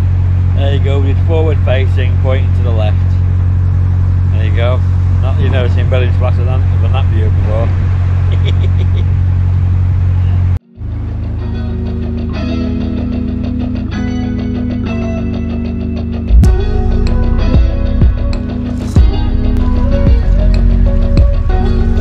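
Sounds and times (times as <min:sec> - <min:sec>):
diesel engine drone: 0:00.0 - 0:22.0
man talking: 0:00.6 - 0:03.2, 0:04.3 - 0:07.8
music with steady beat: 0:11.3 - 0:22.0.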